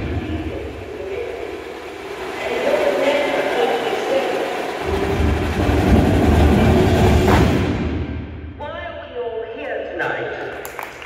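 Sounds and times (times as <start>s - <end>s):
percussion ensemble playing: 0.0s - 8.3s
cymbal crash: 4.5s - 8.6s.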